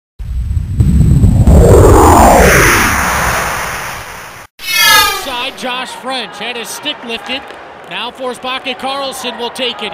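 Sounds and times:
deep rumbling boom: 0:00.2 - 0:03.7
rising whoosh: 0:00.7 - 0:05.5.

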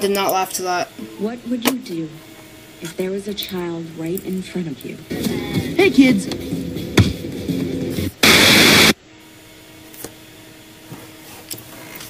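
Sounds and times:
tv static hiss: 0:00.0 - 0:09.6.

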